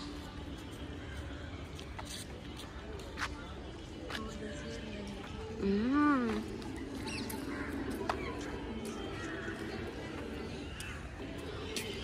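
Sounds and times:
distant indistinct voices: 0.0 - 12.0.

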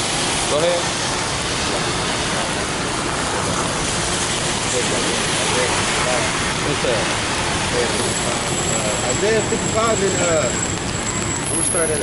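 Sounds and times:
rain on umbrellas and pavement: 0.0 - 12.0.

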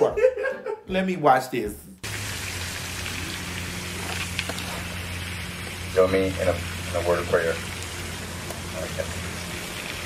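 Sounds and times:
outdoor background hiss: 0.4 - 10.0.

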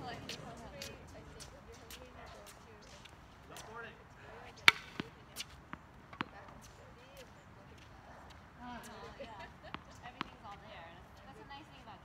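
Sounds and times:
tennis ball struck by racket: 4.6 - 6.7, 9.7 - 10.4
tennis ball bouncing on hard court: 4.6 - 7.2, 9.4 - 10.8.

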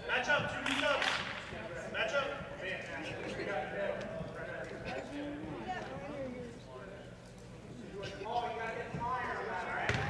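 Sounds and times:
voices chattering: 1.7 - 9.8.

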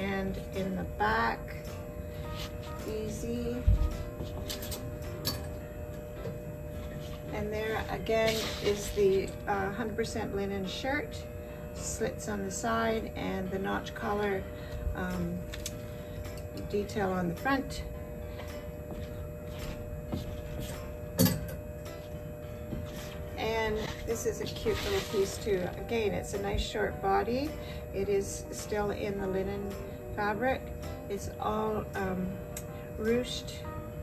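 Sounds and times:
soft background music: 0.0 - 34.0.

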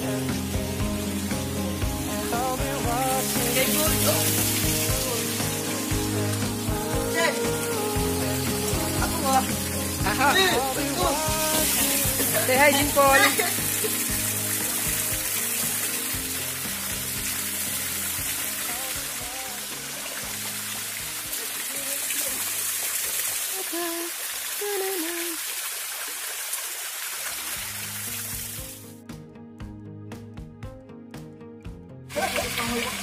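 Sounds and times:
background music: 0.0 - 23.1, 27.5 - 33.0
waterfall pouring into pool: 0.0 - 28.8, 32.1 - 33.0.

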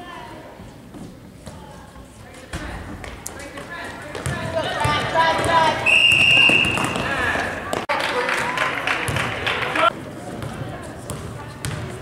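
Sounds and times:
crowd and player voices: 0.0 - 12.0
basketball bouncing on gym floor: 10.4 - 12.0.

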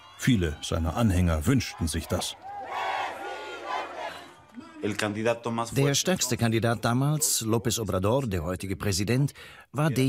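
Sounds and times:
crowd shouting and cheering: 0.0 - 5.4.

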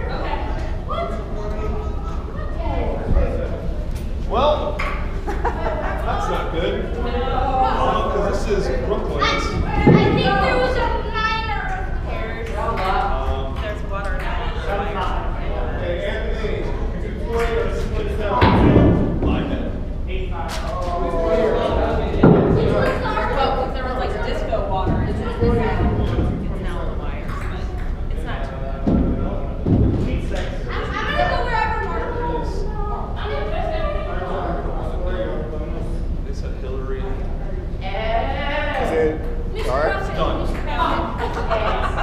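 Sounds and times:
steady low hum: 0.0 - 42.0
voices: 0.0 - 42.0
high-pitched voices chattering: 5.0 - 15.8
dull low thumps: 28.8 - 30.3.

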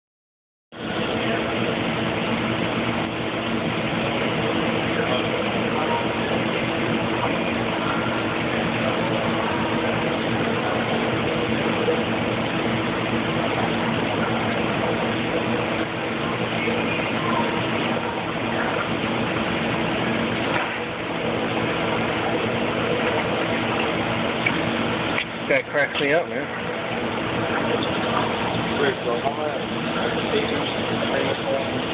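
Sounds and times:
aquarium pumps humming: 0.7 - 31.9.

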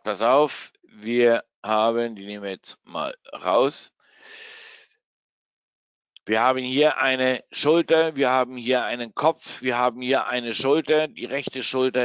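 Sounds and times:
man breathing into microphone: 4.0 - 4.9.

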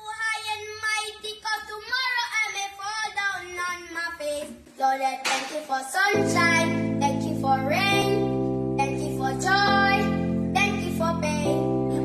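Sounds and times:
high voice singing pop song: 4.8 - 12.0.

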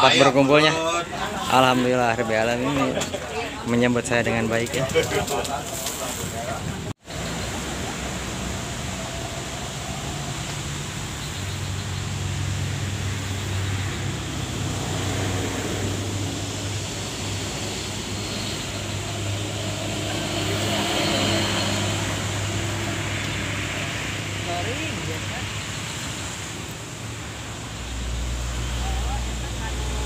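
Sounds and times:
road traffic noise: 0.0 - 30.0.

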